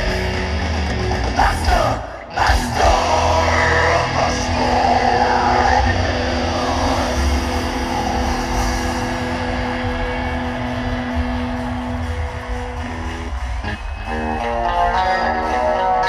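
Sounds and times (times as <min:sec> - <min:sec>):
drums: 0:00.0 - 0:16.0
heavy metal band playing: 0:00.0 - 0:16.0.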